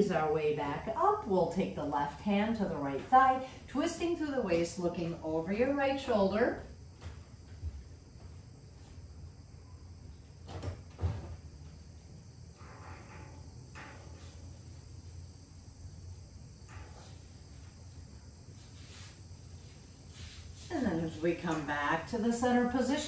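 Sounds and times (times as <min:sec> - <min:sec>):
faint high hiss: 0:12.5 - 0:23.0.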